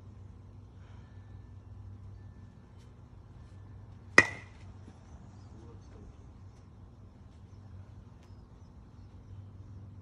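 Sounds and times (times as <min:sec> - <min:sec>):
metal bat hitting ball: 0:04.1 - 0:04.7.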